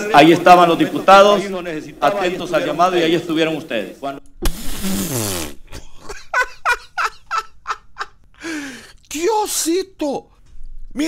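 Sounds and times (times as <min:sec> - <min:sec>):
man laughing: 0:05.7 - 0:08.2.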